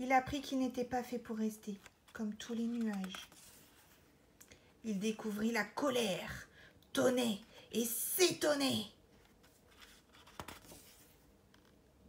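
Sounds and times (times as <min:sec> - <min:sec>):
book page turning: 0:01.7 - 0:04.0, 0:09.2 - 0:11.8.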